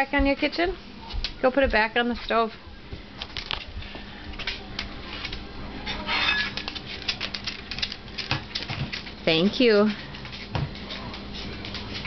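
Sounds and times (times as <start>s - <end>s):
footsteps on tiled floor: 0.0s - 5.5s, 6.5s - 12.0s.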